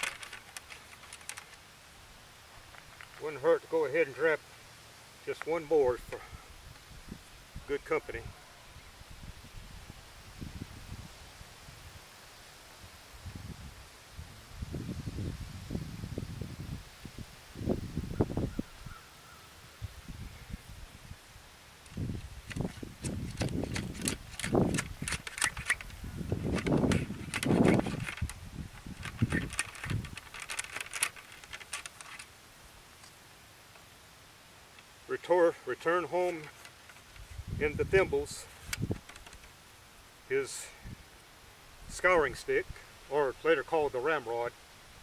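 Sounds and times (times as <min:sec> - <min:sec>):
rod clicking and rattling in bore: 0:00.0 - 0:01.6, 0:22.4 - 0:32.3.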